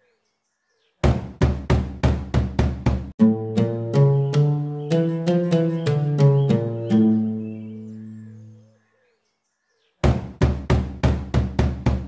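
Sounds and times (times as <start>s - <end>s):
plucked string chord: 3.2s - 8.5s
quick drum hits: 10.1s - 12.0s.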